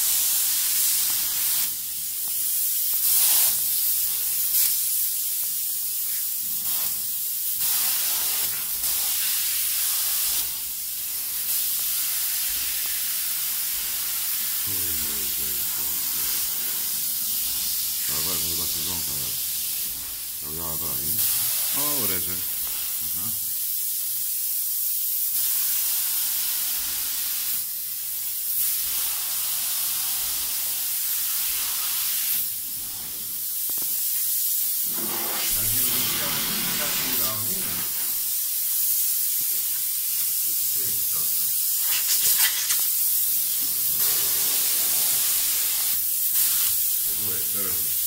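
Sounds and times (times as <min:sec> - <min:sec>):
spray-foam gun hissing: 0:00.0 - 0:48.0.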